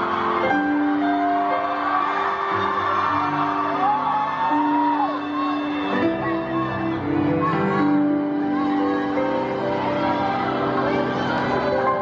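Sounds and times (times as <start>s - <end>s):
live pop ballad music: 0.0s - 12.0s.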